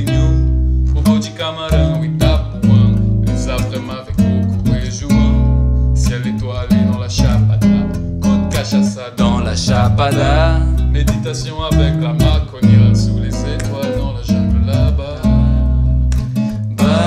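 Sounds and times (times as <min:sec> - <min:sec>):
acoustic guitar strumming: 0:00.0 - 0:17.0
bass line: 0:00.0 - 0:17.0.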